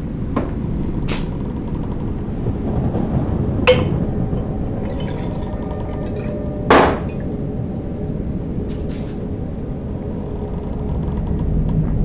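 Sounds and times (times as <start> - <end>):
faint steady hum: 0.0 - 12.0
low engine rumble: 0.0 - 12.0.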